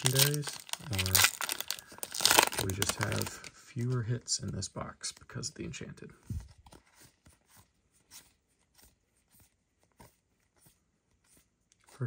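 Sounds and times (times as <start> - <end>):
trading cards rustling and clicking: 0.0 - 12.0.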